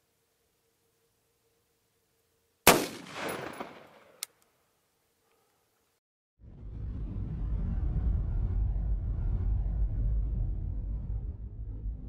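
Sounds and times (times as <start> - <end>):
rifle shot echoing: 2.6 - 4.3.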